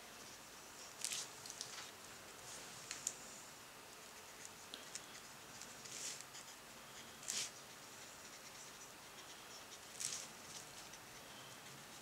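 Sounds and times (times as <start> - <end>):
brush dabbing on paper: 3.9 - 12.0.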